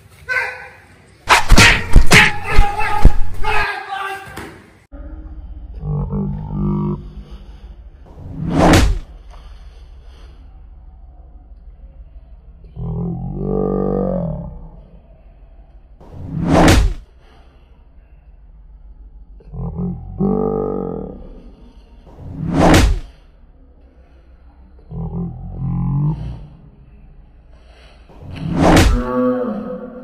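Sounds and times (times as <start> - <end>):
sharp smack: 1.3 - 3.4, 8.4 - 9.1, 16.3 - 17.0, 22.4 - 23.1, 28.3 - 29.1
man shouting: 1.4 - 4.4
whoosh: 8.1 - 9.2, 16.0 - 17.1, 22.1 - 23.2, 28.2 - 29.2.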